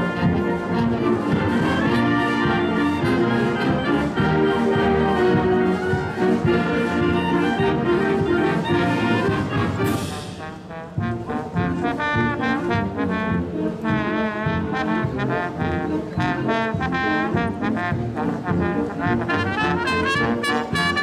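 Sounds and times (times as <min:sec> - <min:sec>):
concert band playing: 0:00.0 - 0:21.0.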